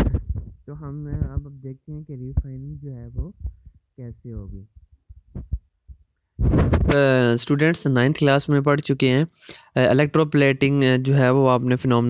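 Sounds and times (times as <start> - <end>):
mouth sounds: 0.0 - 4.8, 6.4 - 8.3
soft low thumps: 0.0 - 7.1
man saying uh: 6.9 - 11.6.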